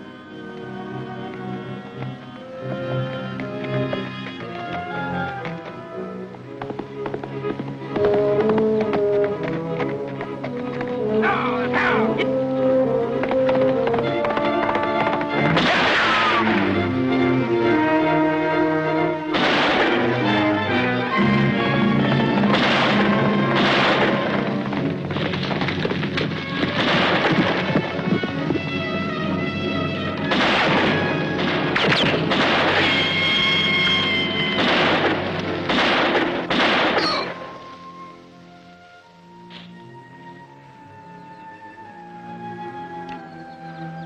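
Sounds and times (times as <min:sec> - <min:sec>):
orchestral film score: 0:00.0 - 0:44.0
gunfire cracks: 0:15.5 - 0:16.5, 0:19.3 - 0:20.1, 0:22.5 - 0:24.4, 0:26.7 - 0:27.8, 0:30.3 - 0:33.1, 0:34.6 - 0:37.4.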